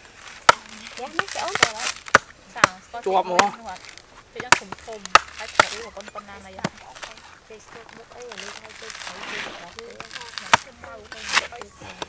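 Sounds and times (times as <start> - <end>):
cleaver chopping coconut husk: 0.0 - 12.0.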